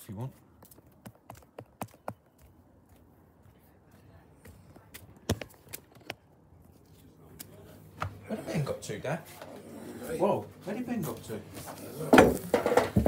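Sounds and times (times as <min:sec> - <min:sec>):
footsteps: 0:00.3 - 0:13.0.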